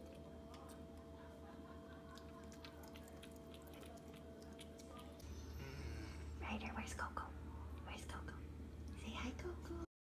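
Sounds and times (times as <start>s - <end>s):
low room hum: 0.0s - 9.9s.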